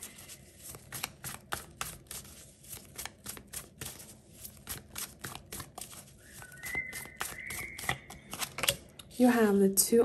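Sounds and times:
cards being shuffled: 0.0s - 8.9s.

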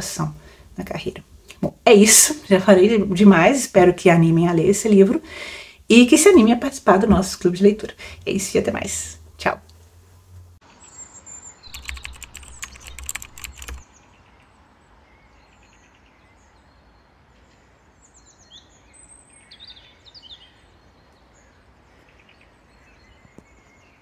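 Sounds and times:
small birds chirping: 10.7s - 24.0s
rapid clicks: 11.7s - 13.8s.

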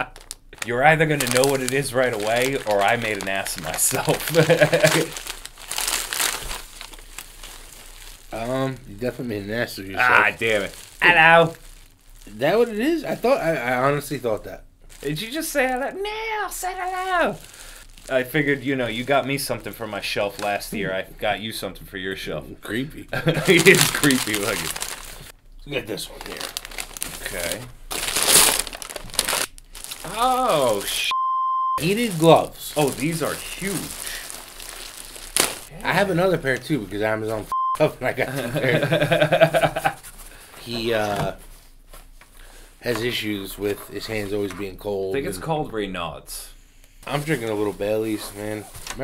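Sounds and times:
wrapping paper crinkling and tearing: 0.0s - 13.8s, 14.9s - 15.8s, 16.6s - 19.1s, 23.2s - 25.4s, 26.0s - 31.1s, 31.8s - 36.1s, 47.1s - 49.0s.

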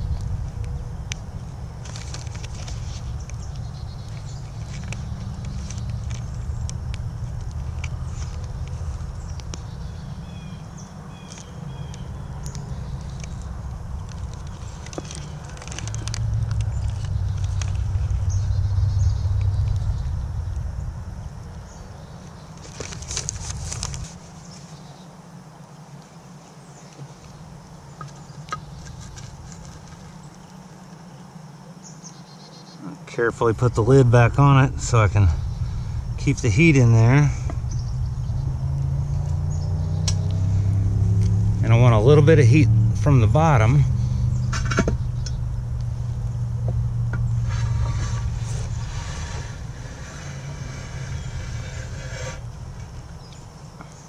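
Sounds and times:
low rumble: 0.0s - 24.1s, 33.4s - 53.8s
campfire crackling: 0.0s - 24.5s, 33.2s - 54.0s
brief rustle: 22.6s - 24.8s.

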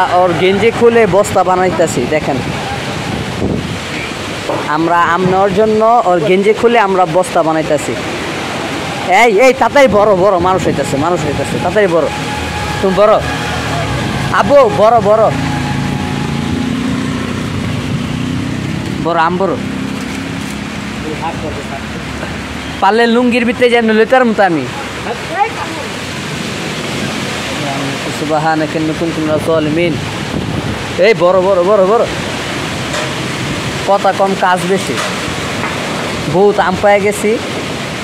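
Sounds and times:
rainstorm with wind: 0.0s - 38.0s.

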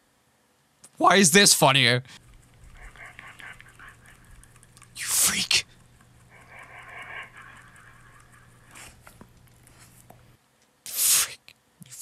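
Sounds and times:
dog chewing and nibbling: 2.2s - 10.4s.

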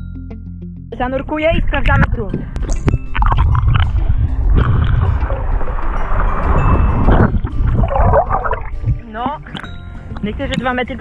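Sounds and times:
background music: 0.0s - 11.0s
water rushing and gurgling: 2.6s - 11.0s.

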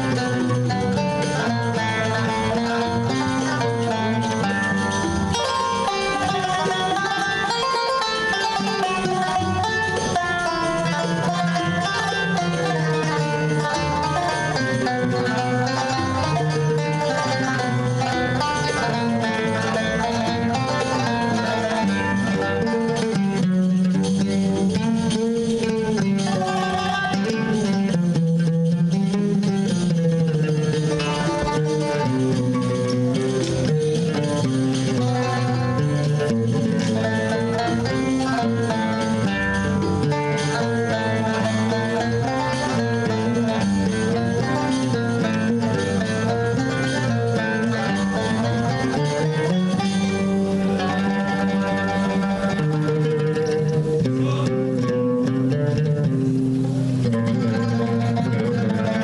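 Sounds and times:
oud and qanun ensemble music: 0.0s - 59.0s.

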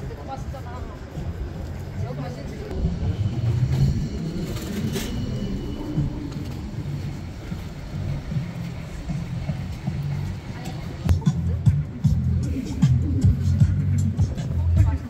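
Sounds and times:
people talking: 0.0s - 3.8s, 8.7s - 15.0s
traffic running: 0.0s - 15.0s.

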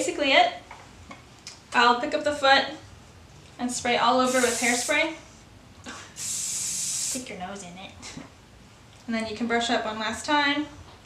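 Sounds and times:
aerosol spray hissing: 4.2s - 5.0s, 6.2s - 7.3s.

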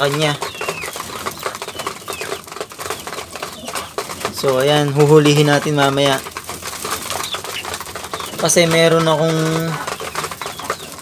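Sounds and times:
pigeons pecking grain: 0.0s - 11.0s.

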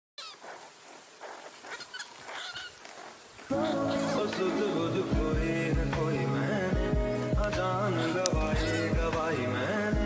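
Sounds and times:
high-pitched animal cries: 0.2s - 0.6s, 1.6s - 2.8s.

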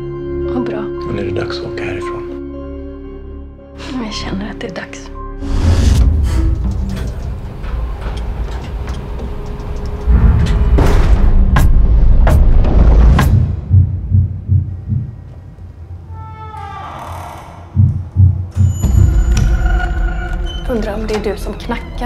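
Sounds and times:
pulsing low thuds: 10.0s - 15.4s, 17.7s - 22.0s
heavy low thumps: 10.1s - 15.6s, 17.7s - 19.6s.

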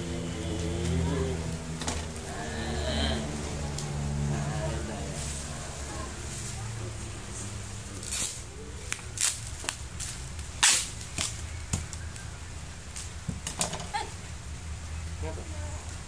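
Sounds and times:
bubble wrap crackling: 7.8s - 13.2s.

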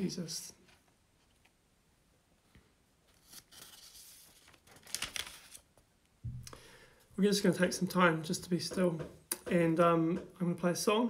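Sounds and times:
rustling handling noise: 0.6s - 1.7s, 2.4s - 5.9s.

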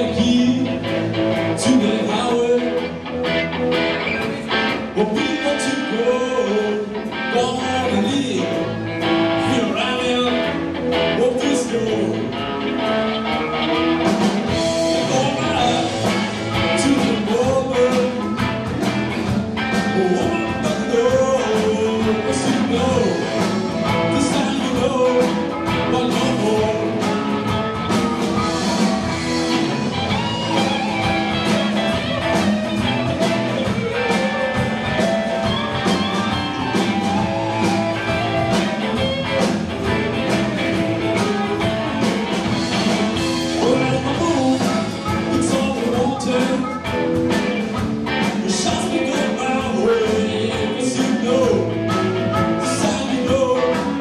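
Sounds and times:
live blues band playing: 0.0s - 54.0s.

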